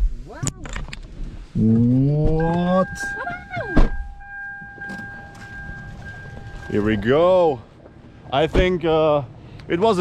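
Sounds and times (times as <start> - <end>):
car engine idling: 2.4 - 10.0.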